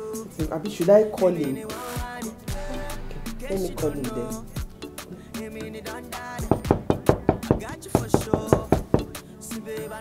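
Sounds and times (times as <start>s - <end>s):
knocking on a wooden door: 6.4s - 9.2s.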